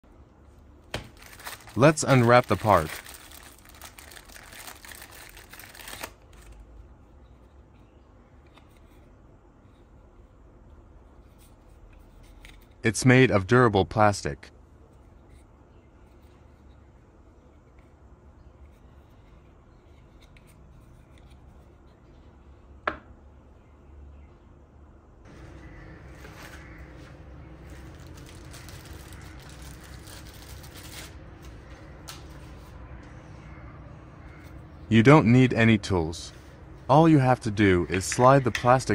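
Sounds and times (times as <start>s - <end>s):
low steady hum: 0.0s - 38.9s
plastic bag crinkling: 1.1s - 6.2s, 27.5s - 31.3s.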